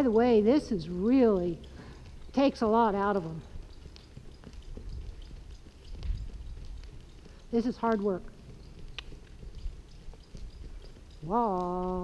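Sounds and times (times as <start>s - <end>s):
muffled hoofbeats on sand: 0.3s - 12.0s.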